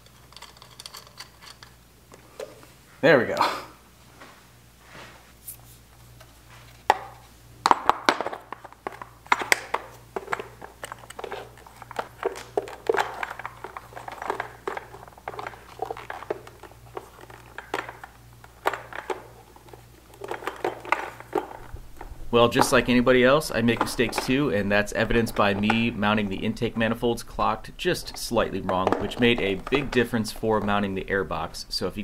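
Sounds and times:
plastic clicking and knocking: 0:06.9 - 0:23.0, 0:27.4 - 0:30.9
plastic scraping: 0:08.3 - 0:31.6.

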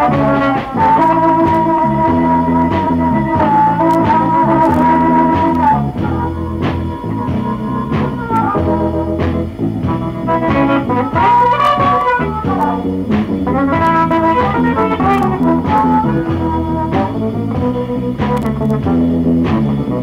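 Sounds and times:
electric blues instrumental: 0:00.0 - 0:20.0.

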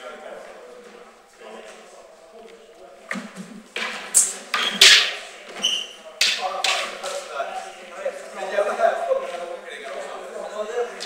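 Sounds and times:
sword blades clashing: 0:04.2 - 0:05.2.

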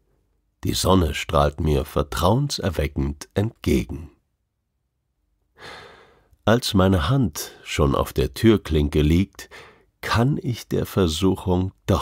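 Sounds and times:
man breathing in softly: 0:05.6 - 0:06.4, 0:09.5 - 0:09.9.

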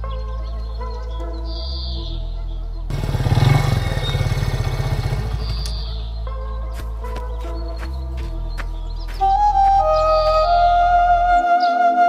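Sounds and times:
background music: 0:00.0 - 0:12.0
motorcycle engine running: 0:02.9 - 0:06.1.

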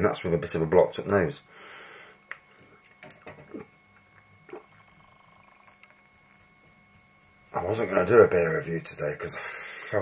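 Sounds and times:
faint electrical hum: 0:00.0 - 0:10.0
person swallowing: 0:03.4 - 0:03.8, 0:04.4 - 0:05.7.

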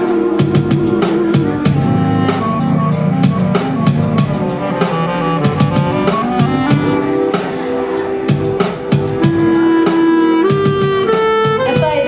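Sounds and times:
clarinet melody: 0:00.0 - 0:12.0
drums and percussion beat: 0:00.0 - 0:12.0.

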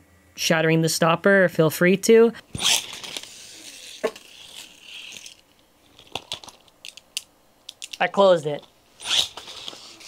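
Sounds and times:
spinning top whirring: 0:02.5 - 0:06.7, 0:08.9 - 0:10.0
plastic clicks: 0:06.0 - 0:08.0.

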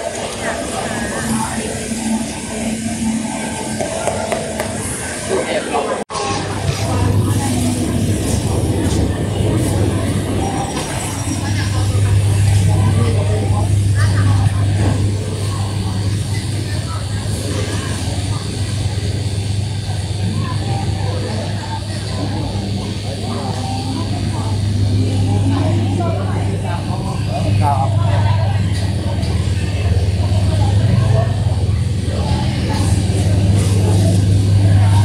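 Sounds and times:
indistinct voices talking: 0:00.0 - 0:35.0
steady low hum: 0:00.0 - 0:35.0.

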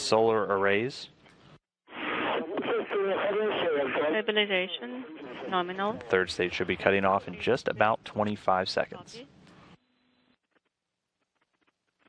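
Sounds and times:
person speaking over radio: 0:05.4 - 0:08.4.

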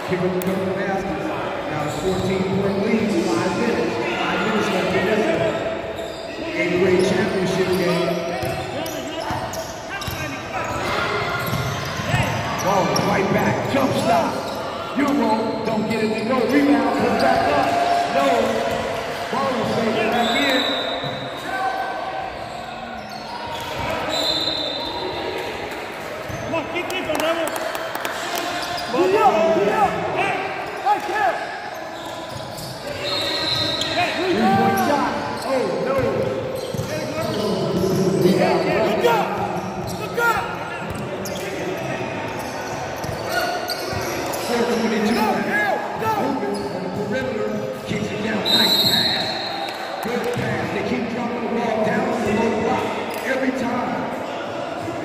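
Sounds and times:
sneakers squeaking on court: 0:01.8 - 0:03.0, 0:04.6 - 0:17.6, 0:19.6 - 0:21.5, 0:22.2 - 0:25.5, 0:26.2 - 0:26.6, 0:30.7 - 0:45.6, 0:46.2 - 0:47.8
echoing voices: 0:24.9 - 0:55.0.

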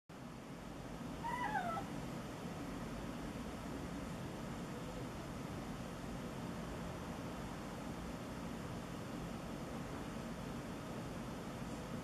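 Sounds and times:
cat meowing: 0:01.2 - 0:01.9.

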